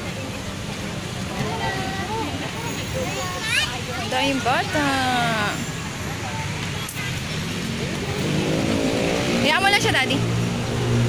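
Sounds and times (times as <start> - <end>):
vehicle engine droning: 7.4 - 11.0.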